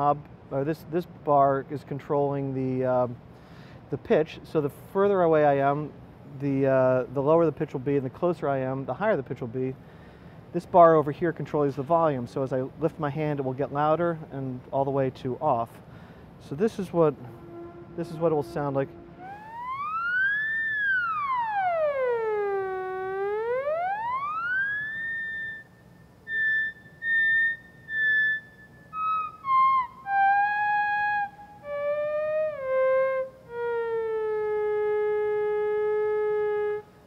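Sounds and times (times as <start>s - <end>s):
theremin gliding tone: 17.1s - 36.9s.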